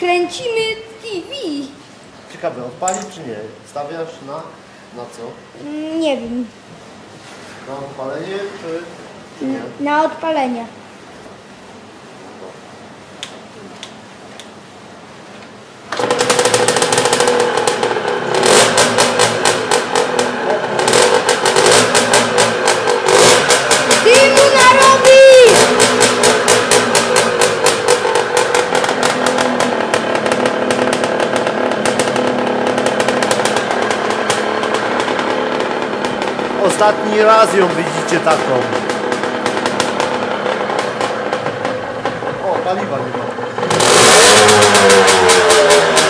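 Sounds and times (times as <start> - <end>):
dirt bike engine revving: 15.9 - 46.0.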